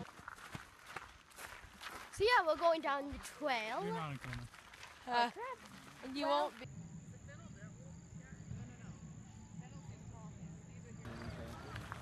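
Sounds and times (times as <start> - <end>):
footsteps on dirt trail: 0.0 - 6.7, 11.0 - 12.0.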